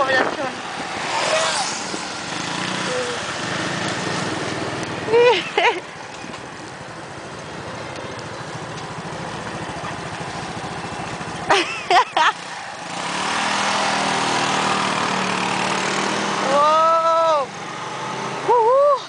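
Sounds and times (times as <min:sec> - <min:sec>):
scooter engines idling and revving: 0:00.0 - 0:19.0.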